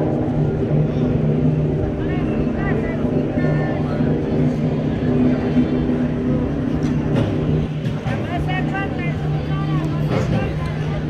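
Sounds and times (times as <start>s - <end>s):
crowd voices: 0.0s - 11.0s
low drone: 0.0s - 11.0s.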